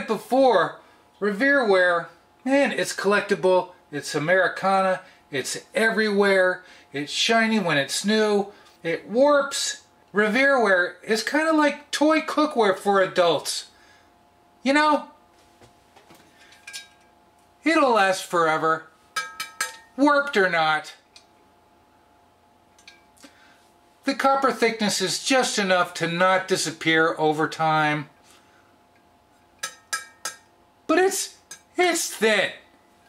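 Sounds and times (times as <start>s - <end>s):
faint steady hum: 0.0s - 33.0s
metallic clink of skillet: 19.2s - 20.0s, 29.6s - 30.5s, 31.4s - 31.7s.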